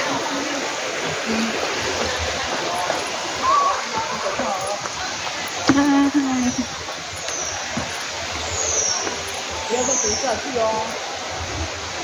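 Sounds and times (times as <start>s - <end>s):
mountain stream rushing: 0.0s - 12.0s.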